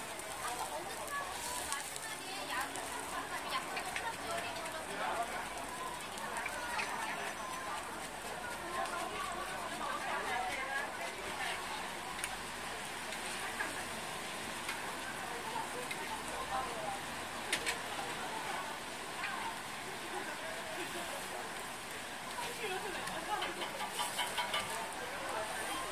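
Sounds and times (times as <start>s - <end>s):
crowd chatter: 0.0s - 25.9s
griddle sizzling: 0.0s - 25.9s.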